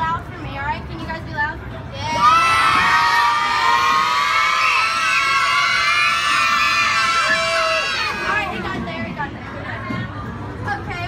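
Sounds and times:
children screaming and cheering: 0:02.0 - 0:08.6.

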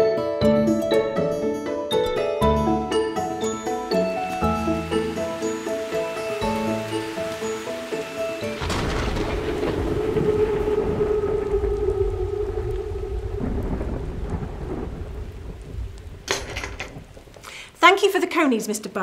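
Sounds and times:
musical notes: 0:00.0 - 0:14.4
steady rain: 0:02.6 - 0:18.4
thunder rumbling: 0:03.4 - 0:17.8.

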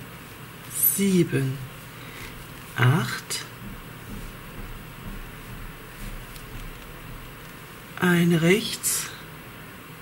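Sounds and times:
room hiss: 0:00.0 - 0:10.0
yarn rustling: 0:00.1 - 0:08.0
knitting needles clicking: 0:03.6 - 0:08.0.

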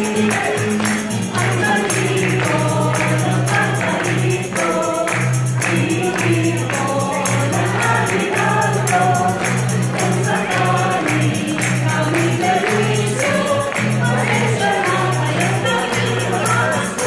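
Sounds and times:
acoustic guitar: 0:00.0 - 0:17.0
light rhythmic percussion: 0:00.0 - 0:17.0
mixed choir singing: 0:00.0 - 0:17.0.

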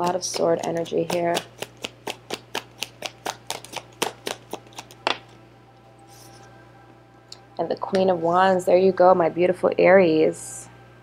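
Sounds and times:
cards being shuffled: 0:00.0 - 0:05.3, 0:06.0 - 0:06.5.

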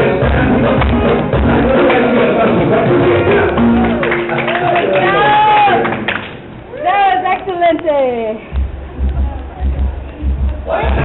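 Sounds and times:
music: 0:00.0 - 0:05.8, 0:08.5 - 0:11.0
women whooping: 0:05.0 - 0:05.9, 0:06.7 - 0:07.2.

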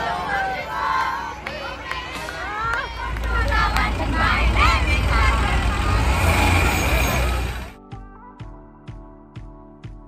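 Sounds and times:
passengers calling and chattering: 0:00.0 - 0:07.8
vehicle engine rumbling: 0:00.0 - 0:07.8.

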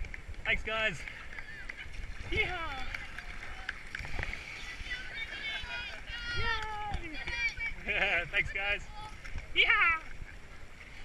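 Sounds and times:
rushing whitewater: 0:00.6 - 0:11.0
paddle splashes: 0:01.0 - 0:07.8
voices calling out: 0:01.0 - 0:10.5.

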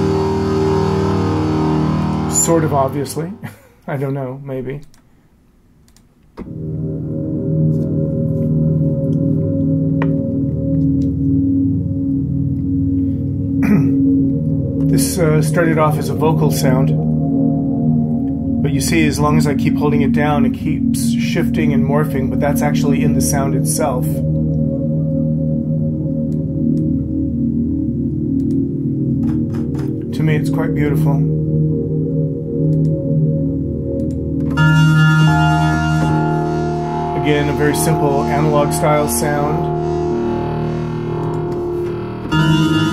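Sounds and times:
morphing synthesizer pad: 0:00.0 - 0:03.8, 0:06.4 - 0:42.9
faint clicks: 0:05.8 - 0:06.5.

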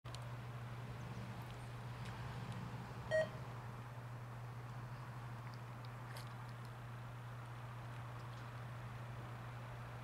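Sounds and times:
steady low hum: 0:00.1 - 0:10.0
short electronic beep: 0:03.1 - 0:03.4.

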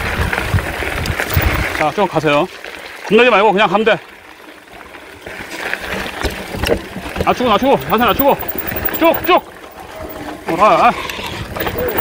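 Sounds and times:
bike tyre and trail rumble: 0:00.0 - 0:03.1, 0:04.0 - 0:12.0
bike rattling: 0:00.4 - 0:01.8, 0:05.2 - 0:10.5, 0:11.4 - 0:12.0.

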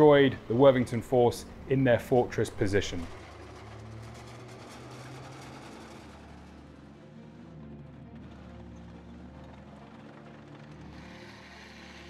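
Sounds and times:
low engine-like rumble: 0:00.0 - 0:12.0.

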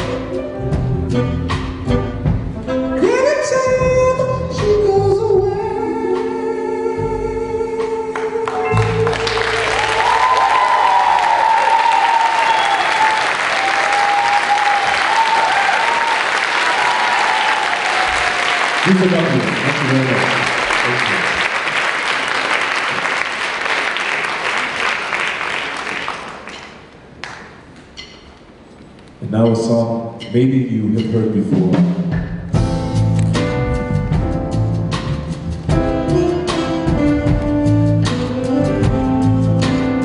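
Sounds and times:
man's voice: 0:03.0 - 0:09.2, 0:18.8 - 0:21.4, 0:29.2 - 0:32.0
audience applauding: 0:08.4 - 0:27.5.

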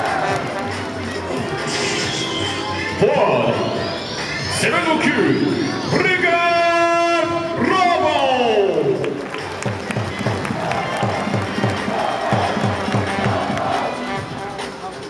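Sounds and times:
crowd voices: 0:00.0 - 0:08.0, 0:08.6 - 0:15.0
announcer over loudspeakers: 0:02.3 - 0:09.2
music with steady beat: 0:09.1 - 0:15.0.

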